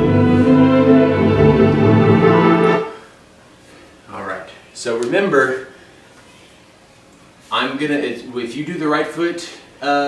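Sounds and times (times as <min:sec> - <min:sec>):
ballet music sustained chord: 0:00.0 - 0:03.0.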